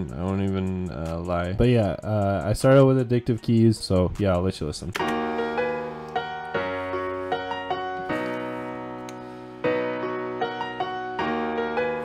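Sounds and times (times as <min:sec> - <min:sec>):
slow piano chords: 0:05.0 - 0:12.0.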